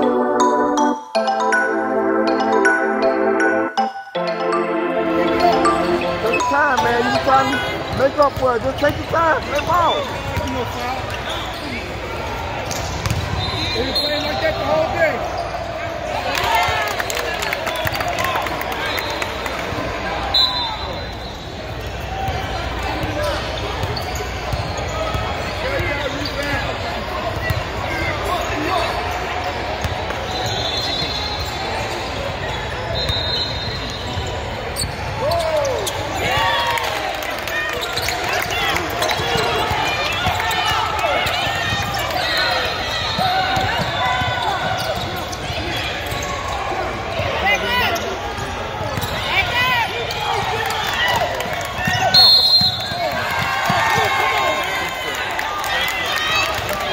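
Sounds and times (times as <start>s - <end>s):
short high-pitched tones: 0.0s - 7.9s
players and spectators calling out: 4.2s - 56.9s
ball bouncing on hardwood court: 12.7s - 13.4s.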